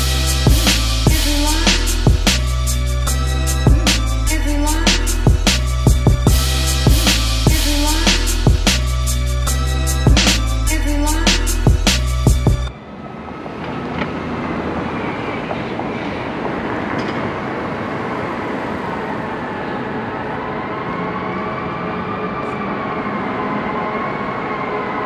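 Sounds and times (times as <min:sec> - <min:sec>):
city street rumble and hiss: 0:00.0 - 0:25.0.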